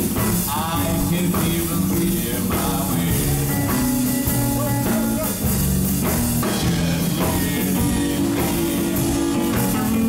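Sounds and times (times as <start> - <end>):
drum kit: 0.0 - 10.0
electric guitar: 0.0 - 10.0
slapped upright double bass: 0.0 - 10.0.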